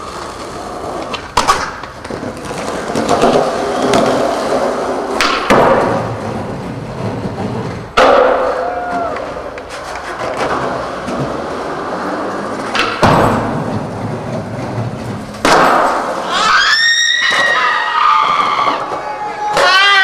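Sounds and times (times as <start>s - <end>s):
skateboard impacts: 0.0s - 20.0s
skateboard wheels rolling: 0.0s - 20.0s
high gliding whoop: 8.4s - 9.6s, 16.2s - 20.0s.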